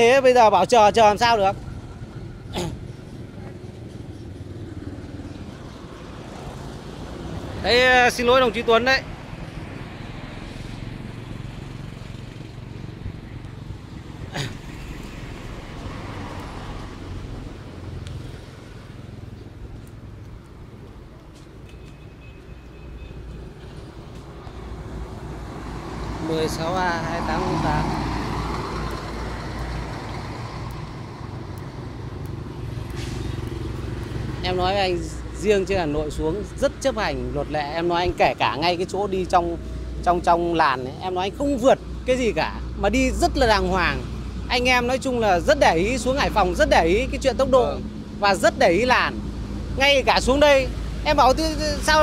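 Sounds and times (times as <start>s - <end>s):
low road rumble: 0.0s - 52.0s.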